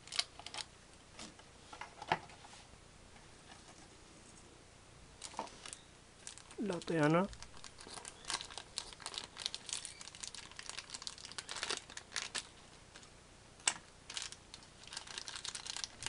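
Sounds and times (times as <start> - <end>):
plastic bag crinkling: 0.0 - 0.7, 5.2 - 16.0.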